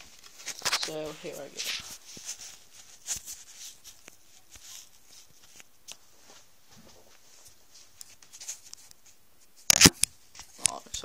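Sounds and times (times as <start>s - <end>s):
camera handling rustling: 9.6s - 10.7s.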